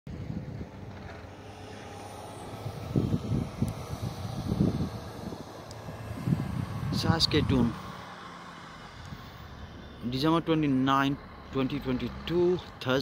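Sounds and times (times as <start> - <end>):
wind buffeting microphone: 0.1 - 8.0
low engine hum: 0.1 - 13.0.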